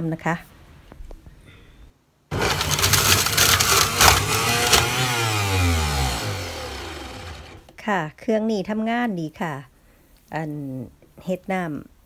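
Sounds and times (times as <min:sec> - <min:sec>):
electric juicer motor running: 0:02.3 - 0:07.7
juicer motor winding down: 0:02.3 - 0:07.7.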